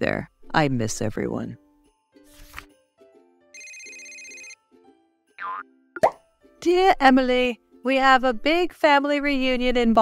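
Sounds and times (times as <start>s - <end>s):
soft background music: 0.0s - 10.0s
electronic phone ring tone: 3.6s - 4.6s.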